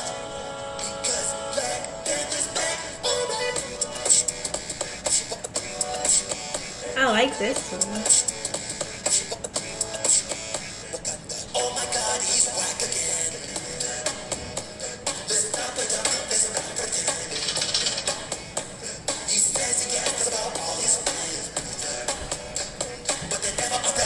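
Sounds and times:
hip-hop beat: 0.0s - 24.0s
person rapping: 6.8s - 8.3s, 9.0s - 17.5s, 18.3s - 24.0s.

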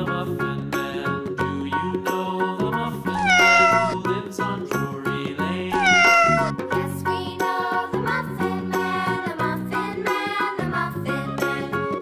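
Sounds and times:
background music: 0.0s - 12.0s
cat meowing: 3.2s - 4.0s, 5.8s - 6.5s.

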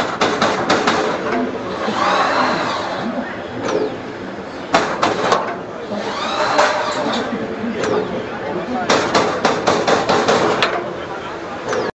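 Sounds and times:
machine running steadily: 0.0s - 11.9s.

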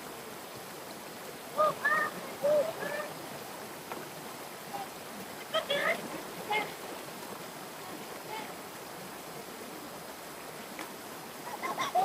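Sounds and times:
stream running over rocks: 0.0s - 12.0s.

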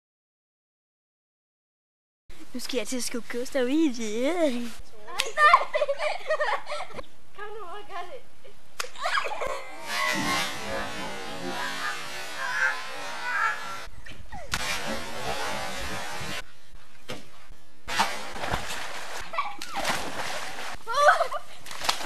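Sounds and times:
boy's voice: 2.4s - 5.4s, 7.4s - 8.3s
water splashing in a pool: 17.9s - 22.0s.

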